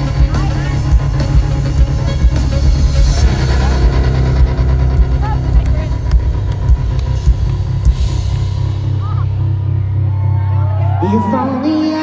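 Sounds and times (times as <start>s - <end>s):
live pop band playing: 0.0s - 12.0s.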